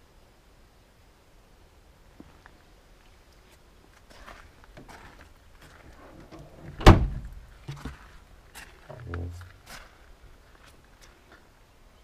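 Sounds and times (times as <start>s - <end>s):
locker door clunk: 6.2s - 7.3s.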